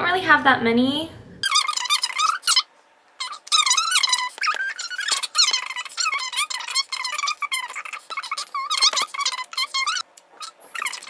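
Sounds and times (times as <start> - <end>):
squeaky pitch-shifted voice chattering: 1.4 - 11.0.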